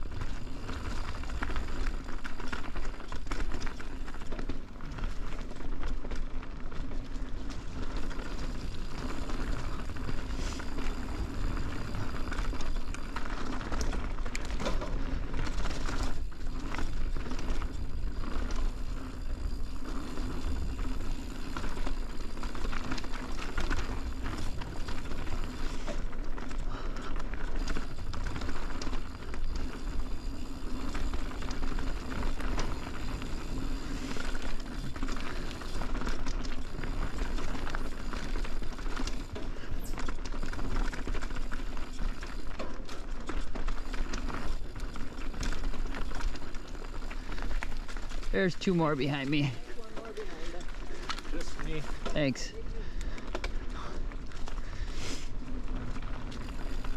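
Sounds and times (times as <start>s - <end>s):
bike tyres on dirt and leaves: 0.0s - 56.9s
bike knocks and rattles: 12.0s - 18.2s.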